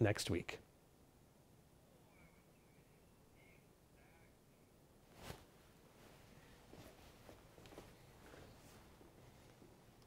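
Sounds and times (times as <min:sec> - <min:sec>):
faint high chirps: 0:01.9 - 0:03.7.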